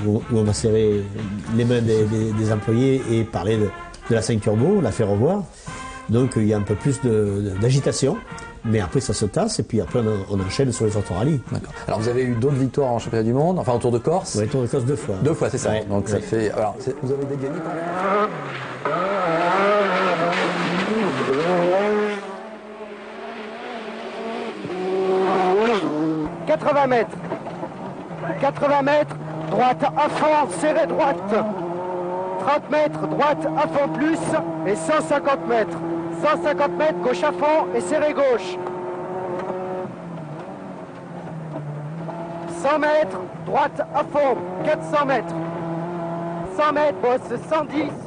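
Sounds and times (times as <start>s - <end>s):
rally car engine revving: 0.0s - 5.1s, 13.4s - 48.0s
road and tyre noise: 0.0s - 48.0s.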